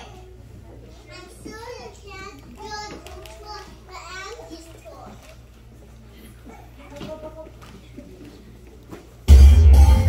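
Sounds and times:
children speaking into microphones: 0.0s - 8.4s.

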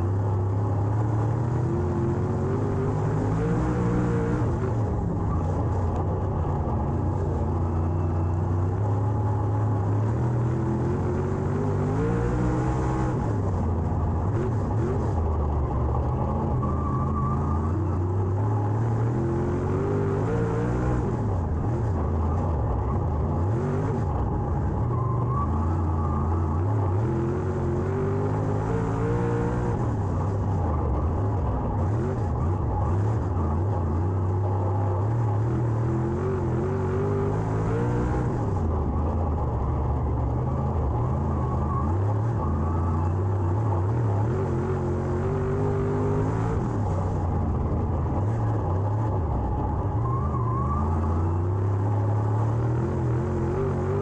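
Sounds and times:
race car engine revving: 0.8s - 7.0s, 9.6s - 54.0s.

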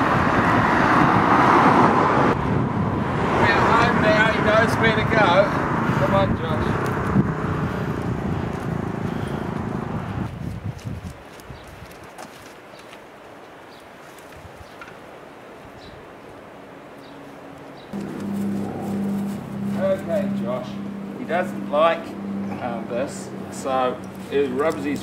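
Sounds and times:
footsteps on concrete: 7.9s - 13.1s
loud rushing noise: 18.0s - 23.6s
steady low hum: 18.0s - 24.4s.

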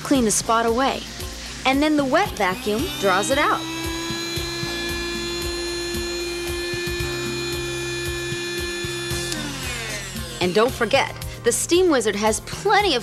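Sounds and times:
steam vacuum motor whining: 0.0s - 11.5s
background music: 0.0s - 13.0s.

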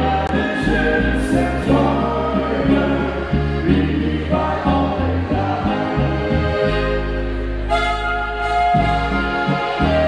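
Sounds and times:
person singing: 0.0s - 7.0s
bass line: 0.0s - 10.0s
guitar: 0.0s - 10.0s
clarinet: 6.0s - 10.0s.

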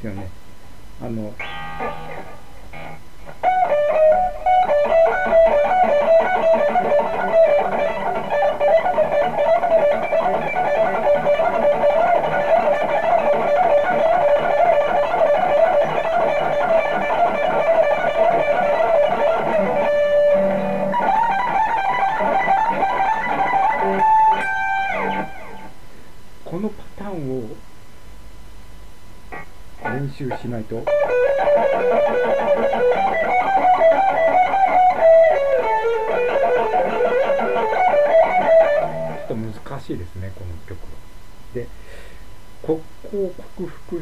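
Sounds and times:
electric guitar shred lick: 1.4s - 25.8s, 29.3s - 39.4s.

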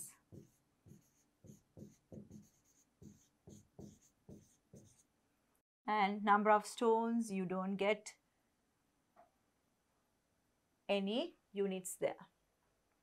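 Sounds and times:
pen scratching on whiteboard: 0.3s - 5.0s.

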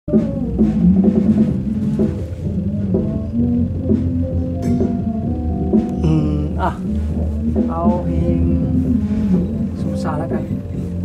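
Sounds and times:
drum kit playing: 0.1s - 11.0s
sustained pitched instrument notes: 0.1s - 11.0s.

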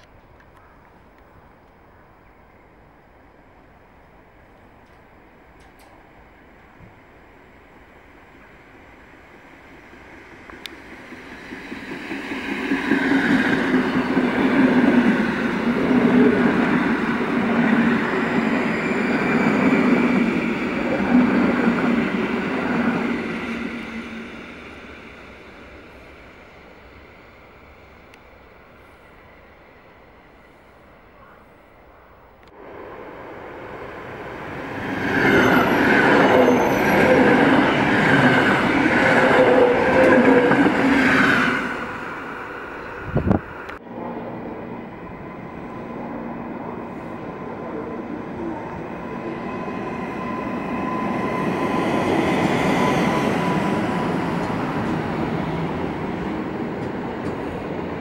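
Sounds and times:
electric trains rolling past: 0.0s - 58.0s.

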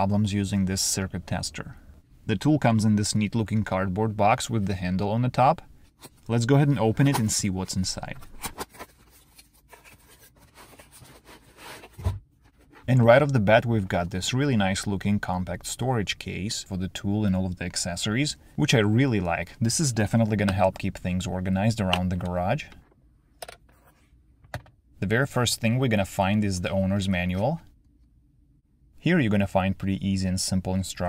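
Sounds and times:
plastic case scraping cardboard: 9.6s - 12.9s.

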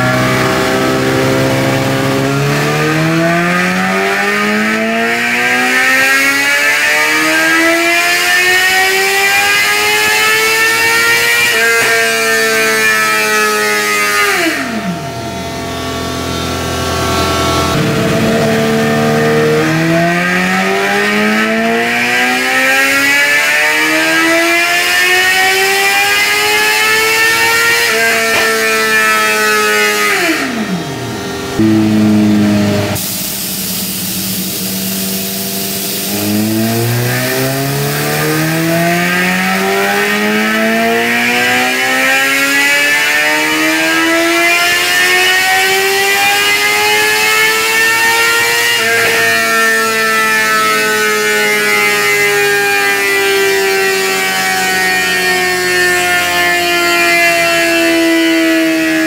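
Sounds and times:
motorcycle engine revving on dyno: 0.0s - 59.0s.

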